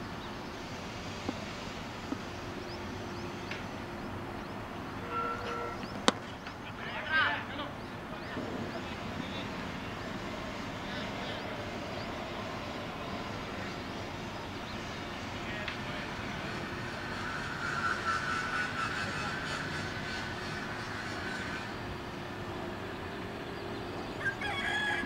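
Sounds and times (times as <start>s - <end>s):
distant engine drone: 0.0s - 25.0s.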